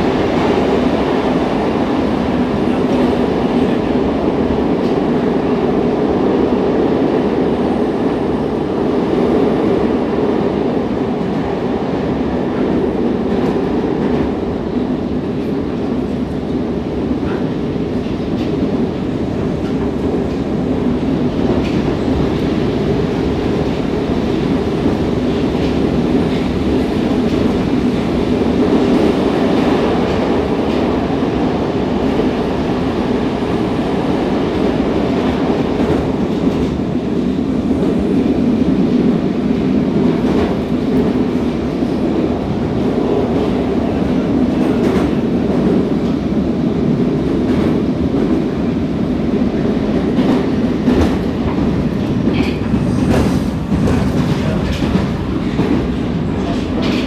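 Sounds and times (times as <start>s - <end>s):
metro train wheels rumbling on rails: 0.0s - 57.0s
train wheels clickety-clack: 0.0s - 57.0s.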